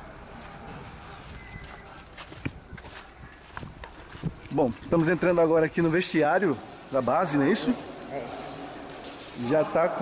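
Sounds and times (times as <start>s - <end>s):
footsteps on gritty rubble: 0.3s - 5.3s.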